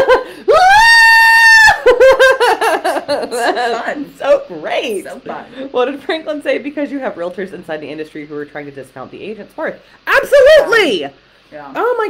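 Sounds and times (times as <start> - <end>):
woman laughing: 0.0 - 0.3, 1.7 - 4.0
woman mock screaming: 0.1 - 2.2.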